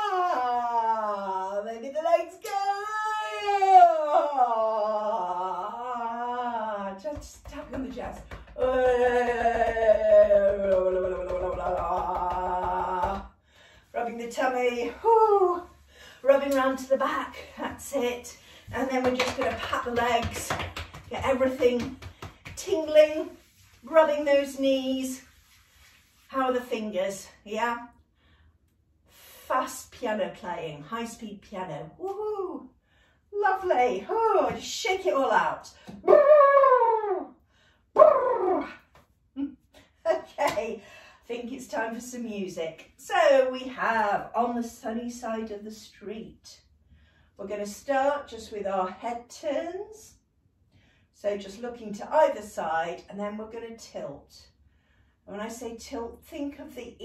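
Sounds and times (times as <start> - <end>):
fingertips tapping chest: 7.0 - 13.3, 18.8 - 23.0.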